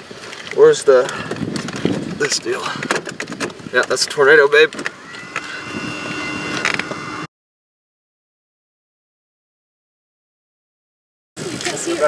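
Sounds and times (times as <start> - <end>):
vehicle engine hum and rumble: 0.0 - 7.3
thin high whine: 4.2 - 7.3.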